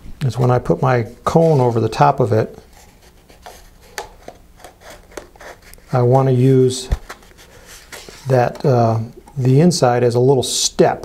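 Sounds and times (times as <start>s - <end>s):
paper cone scraping on cardboard: 1.2s - 2.0s, 2.6s - 6.0s, 7.0s - 8.6s.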